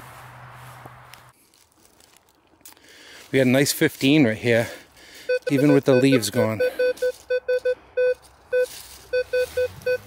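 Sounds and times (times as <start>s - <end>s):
metal detector short beeps: 5.3s - 10.0s.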